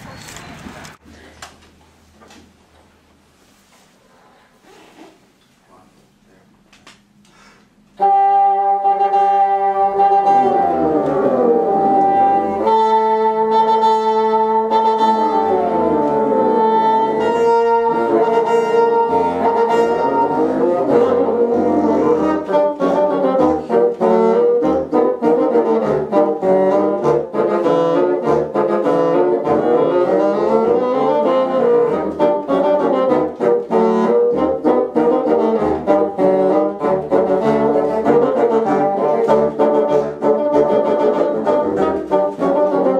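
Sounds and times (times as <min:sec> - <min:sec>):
brass ensemble playing: 0:08.0 - 0:42.9.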